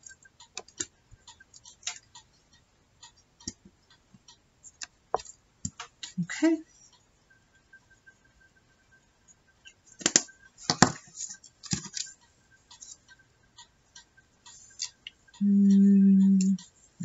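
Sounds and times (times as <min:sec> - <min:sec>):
paper tapping and rustling: 0:10.0 - 0:12.1
faint steady high tone: 0:15.4 - 0:16.8.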